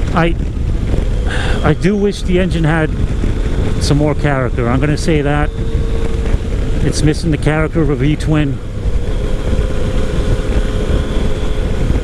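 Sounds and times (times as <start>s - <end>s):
motorcycle engine cruising: 0.0s - 12.0s
wind rumble on microphone: 0.0s - 12.0s.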